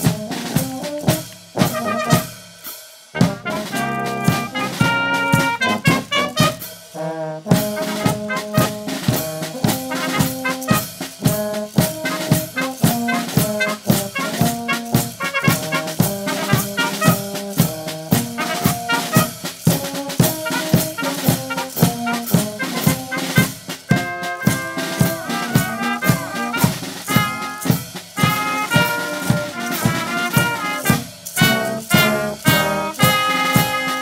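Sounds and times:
low brass and tuba: 0:00.0 - 0:02.5, 0:03.1 - 0:34.0
bass drum snare and cymbals beat: 0:00.0 - 0:34.0
trumpets: 0:00.0 - 0:34.0.

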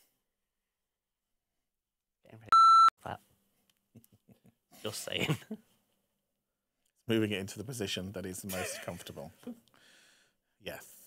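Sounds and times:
censor bleep: 0:02.5 - 0:02.9.

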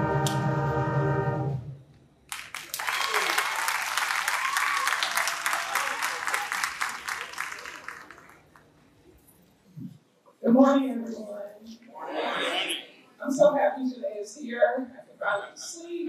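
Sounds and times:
audience applauding: 0:02.3 - 0:08.8.

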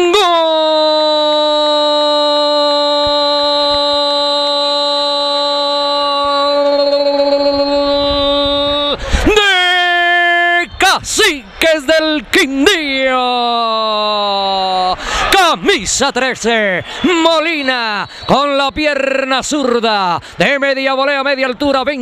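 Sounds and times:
commentator shouting goal cry: 0:00.0 - 0:22.0.

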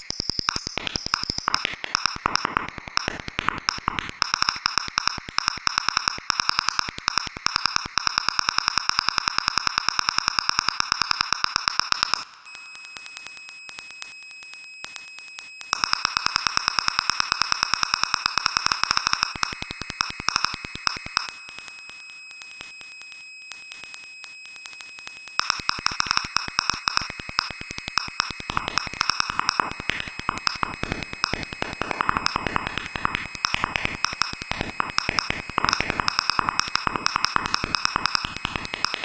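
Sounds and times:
synthesizer clicking pulses: 0:00.0 - 0:12.4, 0:15.7 - 0:21.4, 0:25.4 - 0:39.0
hissing buzzing noise band: 0:25.4 - 0:39.0.

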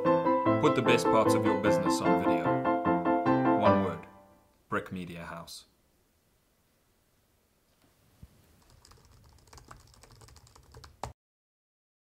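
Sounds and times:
laptop keyboard typing: 0:08.6 - 0:11.2.

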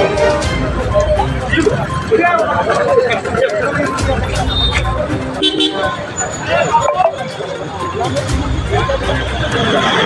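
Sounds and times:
highway traffic rumble: 0:00.0 - 0:10.0
vehicle horn toot: 0:05.4 - 0:06.0.

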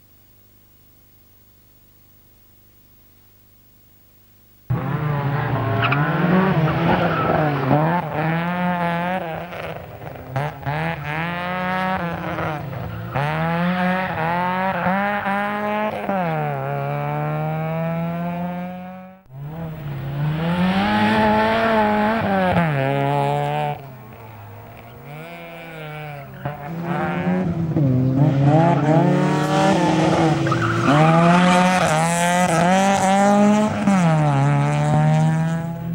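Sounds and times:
rally car engine revving hard: 0:04.7 - 0:35.9.

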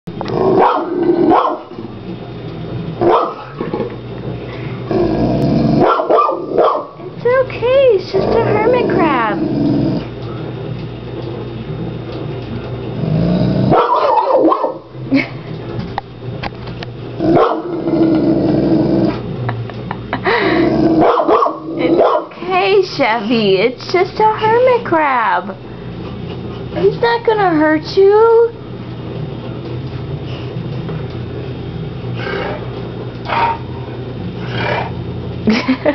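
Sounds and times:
dog growling: 0:00.2 - 0:01.9, 0:04.8 - 0:06.7, 0:08.0 - 0:10.2, 0:13.0 - 0:14.5, 0:17.2 - 0:19.4, 0:20.3 - 0:22.2, 0:32.1 - 0:35.1
dog barking: 0:00.6 - 0:01.7, 0:03.0 - 0:03.6, 0:05.8 - 0:07.0, 0:13.7 - 0:14.8, 0:17.4 - 0:17.7, 0:21.0 - 0:22.4.

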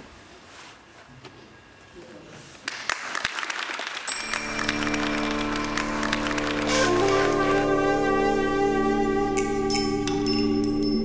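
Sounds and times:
people clapping: 0:02.6 - 0:10.5
music with long held notes: 0:04.1 - 0:11.0.

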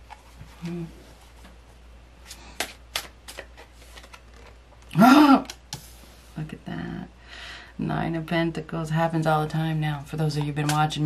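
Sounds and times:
cards shuffling: 0:02.2 - 0:04.6.

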